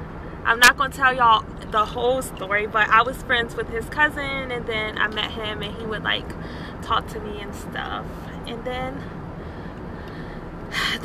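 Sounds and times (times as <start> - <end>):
low rumble inside car: 0.0 - 11.0
sharp intake of breath: 6.4 - 6.8, 9.3 - 11.0.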